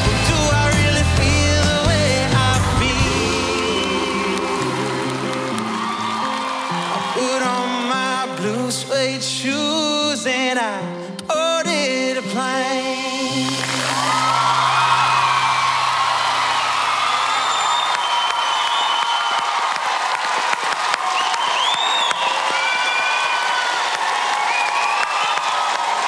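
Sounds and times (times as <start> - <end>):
audience applauding and cheering: 0.0 - 9.1, 13.3 - 26.0
high shouts: 2.9 - 8.5, 13.7 - 26.0.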